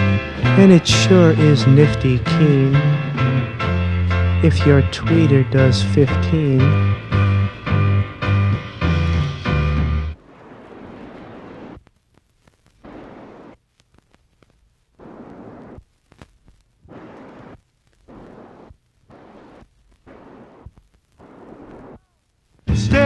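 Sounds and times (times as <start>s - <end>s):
faint rushing noise: 9.0s - 23.0s
high-pitched test tone pulses: 11.8s - 23.0s.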